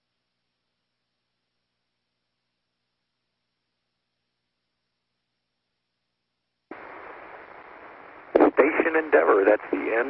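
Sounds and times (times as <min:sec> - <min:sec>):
radio static hiss: 0:06.7 - 0:10.0
voice speaking over radio: 0:08.3 - 0:10.0.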